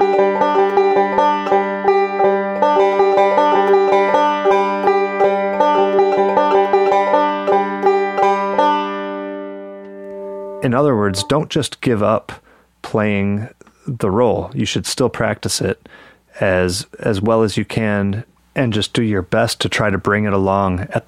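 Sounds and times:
banjo picking fast roll: 0.0 - 11.4.

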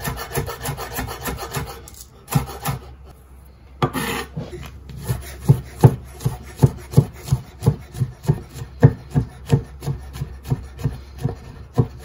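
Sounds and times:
knife scraping cutting board: 3.8 - 12.0
knife chopping on wooden board: 4.9 - 12.0.

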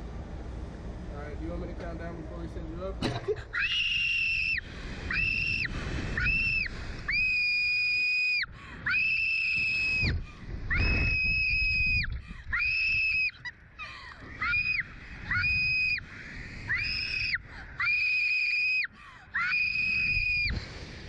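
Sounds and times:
girl screaming: 3.5 - 10.1, 10.7 - 13.3, 14.4 - 16.0, 16.7 - 20.5.

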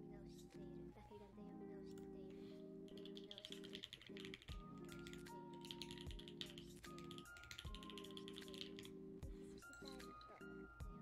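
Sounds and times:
soft background music: 0.0 - 11.0
keyboard typing clicks: 2.9 - 9.0, 9.6 - 10.4.

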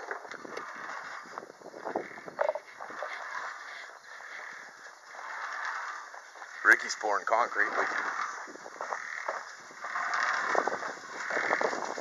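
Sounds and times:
footsteps on dirt: 0.0 - 12.0.

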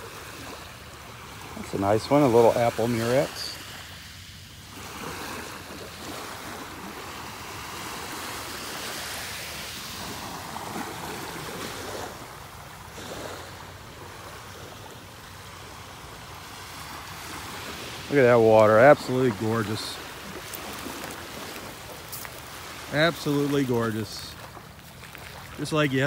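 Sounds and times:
small waves washing on shore: 0.0 - 26.0.

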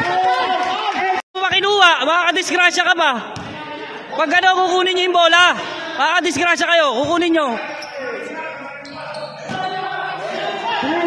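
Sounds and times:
players' voices: 0.3 - 11.0
ball bouncing on hard court: 3.3 - 3.6.

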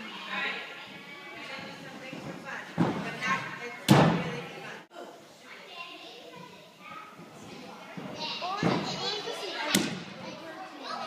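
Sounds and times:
background voices in gym: 0.0 - 11.0.

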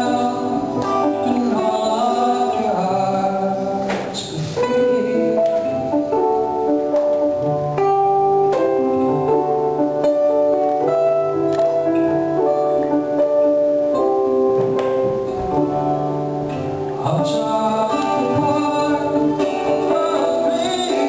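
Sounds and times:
guitar playing: 0.0 - 21.0
keyboard playing chords: 0.0 - 21.0.

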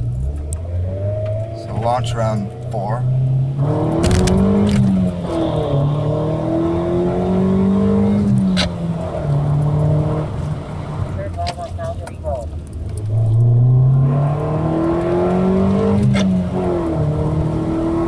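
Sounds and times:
car engine accelerating hard: 0.0 - 12.0, 12.7 - 18.0.

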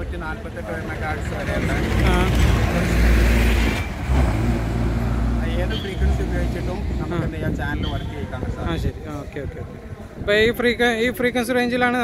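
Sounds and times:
road traffic passing: 0.0 - 10.3.

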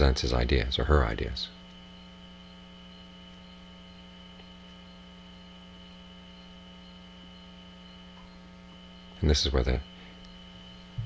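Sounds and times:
electrical hum: 0.0 - 11.0
faint high whine: 0.0 - 11.0.

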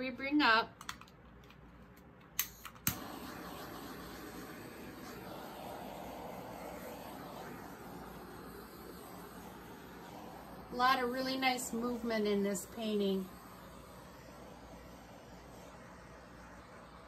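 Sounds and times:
torch igniter clicks: 0.8 - 4.2
torch flame hissing: 2.5 - 17.0.

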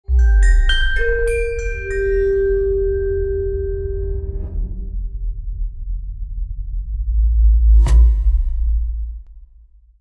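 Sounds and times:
bell-like chime tone: 0.1 - 4.3
deep low drone: 2.5 - 10.0.

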